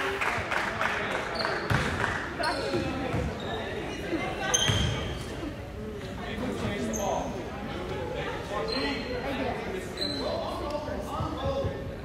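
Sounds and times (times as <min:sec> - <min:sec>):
voices in a gym: 0:00.0 - 0:12.0
basketball bouncing on gym floor: 0:01.7 - 0:02.0, 0:02.6 - 0:03.4
short high squeaks: 0:09.9 - 0:10.5.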